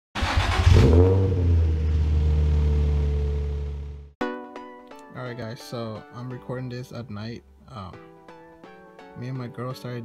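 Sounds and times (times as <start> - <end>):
car engine and exhaust drone: 0.2 - 4.2.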